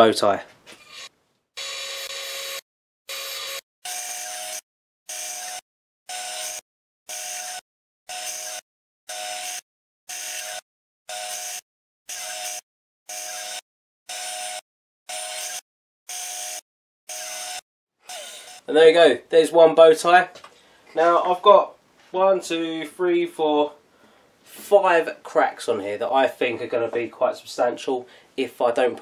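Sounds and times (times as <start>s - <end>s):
bandsaw cutting wood: 0.8s - 18.7s.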